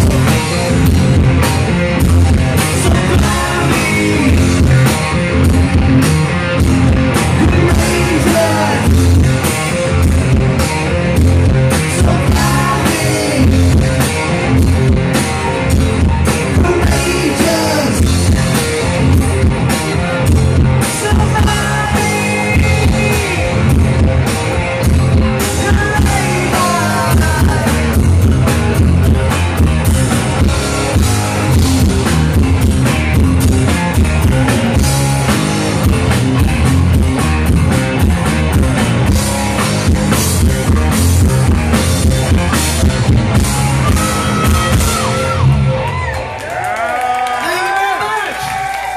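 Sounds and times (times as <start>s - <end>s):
drum kit: 0.0s - 47.7s
bass guitar: 0.0s - 48.9s
electric guitars: 0.0s - 48.9s.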